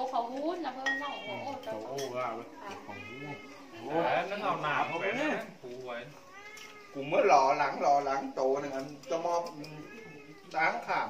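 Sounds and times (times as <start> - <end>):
cat meowing: 1.1 - 7.8, 9.4 - 11.0.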